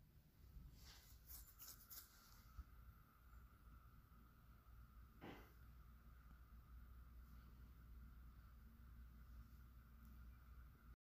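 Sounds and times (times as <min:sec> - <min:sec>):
faint steady whine: 0:00.0 - 0:11.0.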